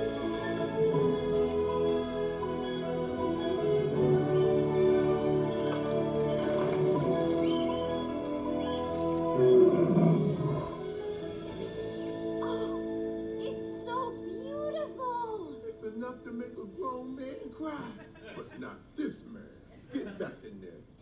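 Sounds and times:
film score over speakers: 0.0s - 21.0s
loud creature call: 8.7s - 11.0s.

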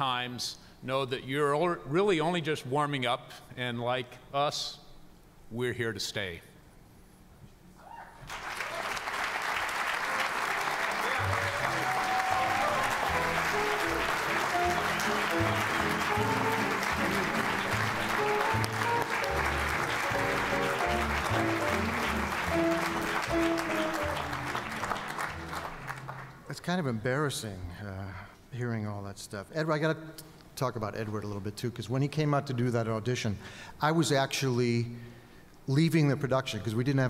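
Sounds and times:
audience applauding: 8.2s - 26.5s
music playing: 10.6s - 26.4s.

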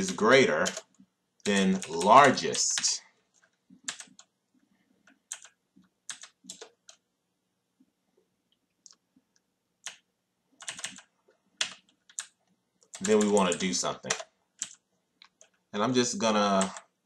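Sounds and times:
computer keyboard typing: 0.0s - 4.3s, 5.0s - 7.0s, 10.6s - 15.6s, 16.4s - 17.0s.

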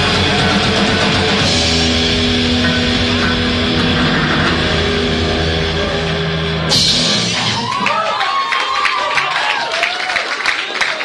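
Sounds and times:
rock band sustained chord: 0.0s - 7.7s.

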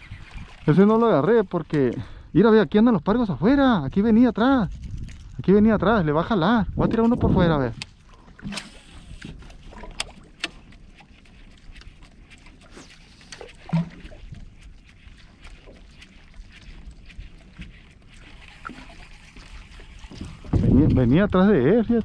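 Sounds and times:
waves lapping against hull: 0.0s - 22.0s.

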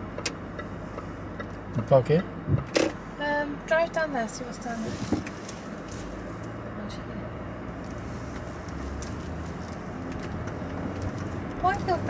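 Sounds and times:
car engine and road noise hum: 0.0s - 12.0s.

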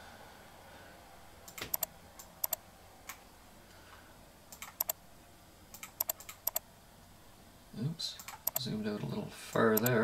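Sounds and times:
mouse or keyboard clicks: 1.5s - 3.2s, 4.5s - 5.0s, 5.7s - 6.6s, 8.2s - 8.6s
man talking: 7.8s - 10.0s.

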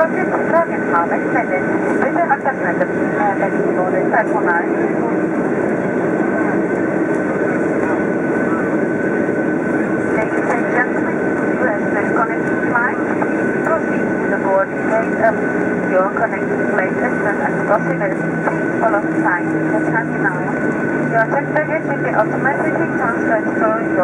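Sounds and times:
indistinct voices talking: 0.0s - 24.0s
jet engines humming and whining: 0.0s - 24.0s.

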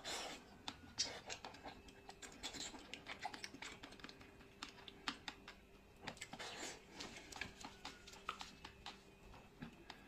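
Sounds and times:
wet chewing smacks: 0.6s - 10.0s.

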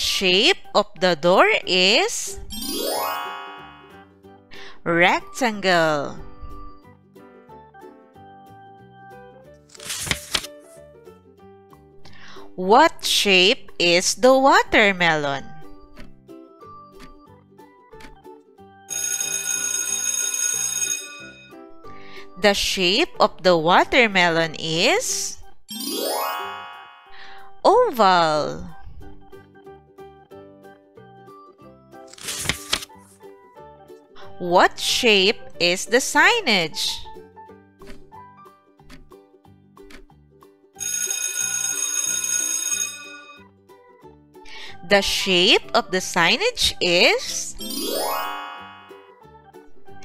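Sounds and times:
light background music: 0.0s - 50.0s
alarm clock bell ringing: 2.7s - 4.1s, 18.9s - 21.6s, 40.8s - 43.4s, 47.9s - 49.1s.

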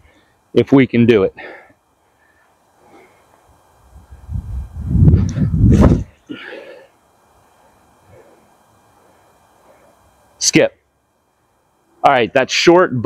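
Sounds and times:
man's loud breathy vocal sound: 6.0s - 7.0s.

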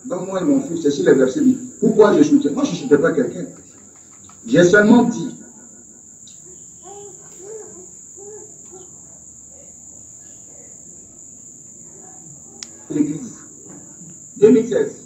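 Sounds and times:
high-pitched chirring: 4.3s - 9.4s
man's voice over video call: 4.5s - 5.4s.

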